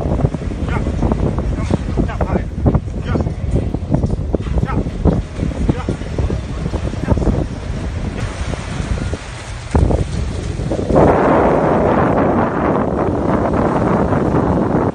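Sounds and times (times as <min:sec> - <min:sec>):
surf washing in: 0:00.0 - 0:14.9
wind buffeting microphone: 0:00.0 - 0:14.9.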